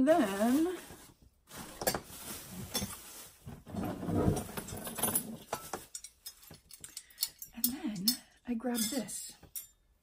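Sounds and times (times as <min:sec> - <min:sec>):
objects being moved about: 0:00.2 - 0:07.7.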